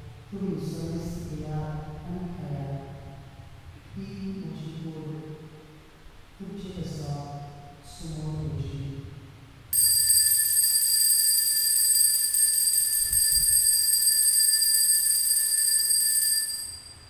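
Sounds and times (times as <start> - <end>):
altar bell ringing: 9.8 - 17.0.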